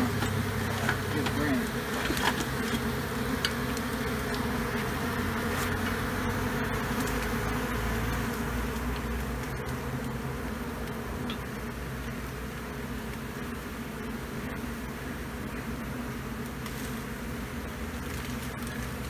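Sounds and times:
honeybee swarm buzzing: 0:00.0 - 0:19.0.

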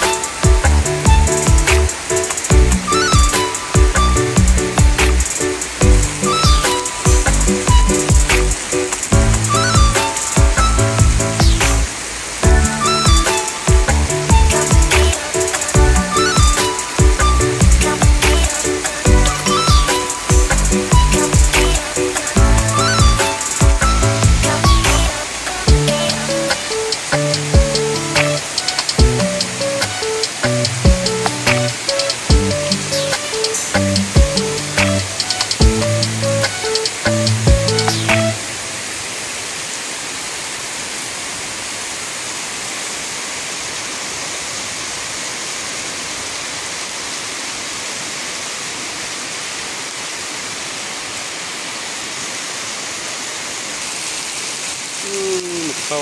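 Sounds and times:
electronic music with steady beat: 0:00.0 - 0:38.4
heavy rain hissing: 0:00.0 - 0:56.0.

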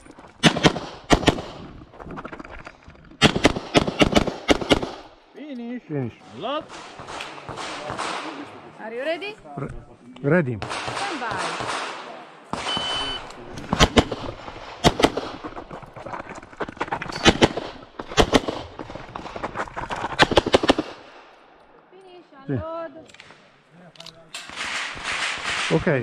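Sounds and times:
shot timer beep: 0:12.6 - 0:13.3.

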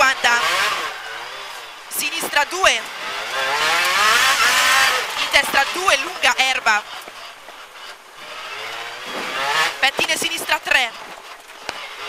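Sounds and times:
car engine revving: 0:00.0 - 0:12.0
road noise hiss: 0:00.2 - 0:12.0.

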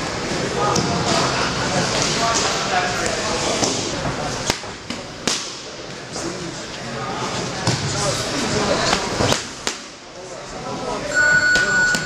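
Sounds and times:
boxing gloves slapping mitts: 0:04.4 - 0:05.6.

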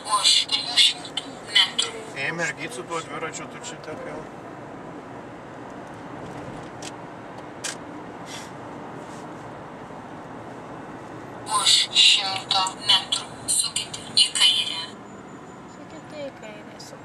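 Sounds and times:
car road and engine noise: 0:00.0 - 0:17.0.

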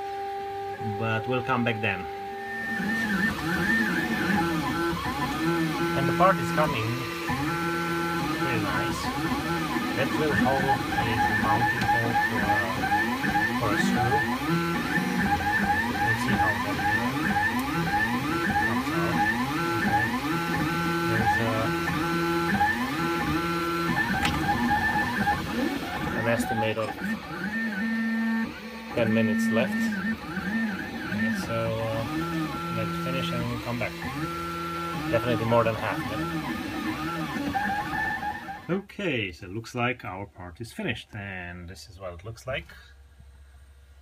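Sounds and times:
stepper motors whining: 0:00.0 - 0:38.8.

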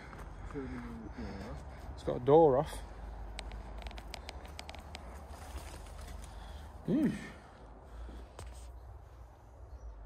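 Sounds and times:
footsteps crunching dry leaves: 0:05.0 - 0:06.5.

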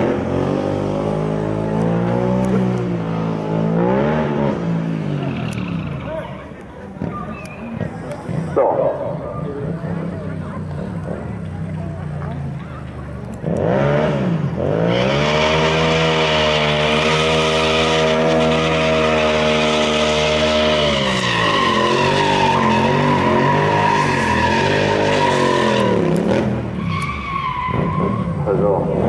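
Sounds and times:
motorcycle engine revving: 0:00.0 - 0:06.3, 0:09.6 - 0:27.0
tyre screeching: 0:14.9 - 0:28.5.

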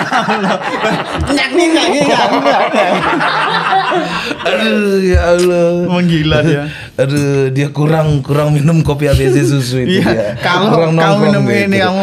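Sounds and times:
men laughing: 0:00.0 - 0:05.0.

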